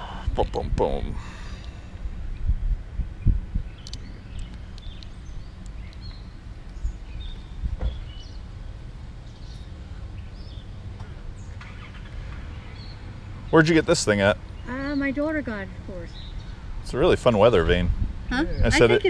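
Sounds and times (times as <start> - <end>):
low outdoor rumble: 0.0 - 19.0.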